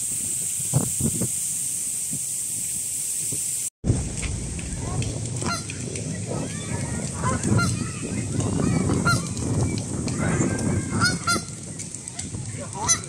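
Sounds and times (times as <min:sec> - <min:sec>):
geese honking: 0:05.4 - 0:05.8, 0:06.6 - 0:07.8, 0:08.8 - 0:09.4, 0:10.2 - 0:13.0.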